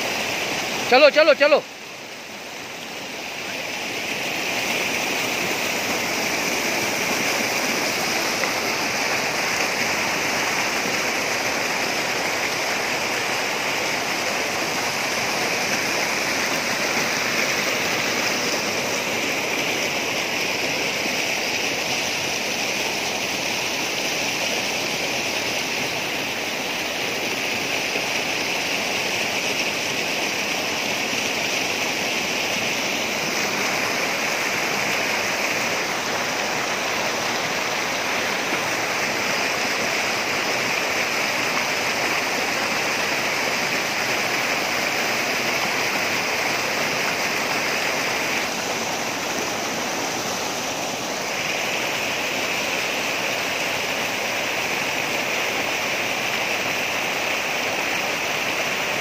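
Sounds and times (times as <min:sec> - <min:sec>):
stream rushing over rocks: 0:00.0 - 0:59.0.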